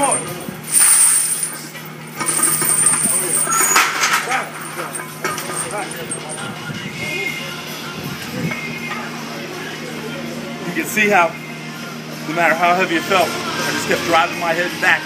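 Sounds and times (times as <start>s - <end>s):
chains clinking and rattling: 0.0s - 6.6s.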